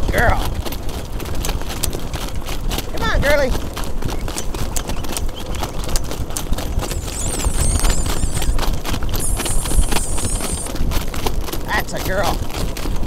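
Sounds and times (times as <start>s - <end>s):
rapid horse hoofbeats: 0.0s - 13.0s
wind rumbling on microphone: 0.0s - 13.0s.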